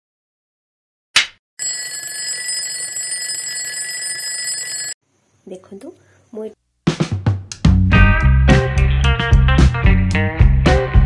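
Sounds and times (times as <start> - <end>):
bell-like alarm ringing: 1.6 - 5.0.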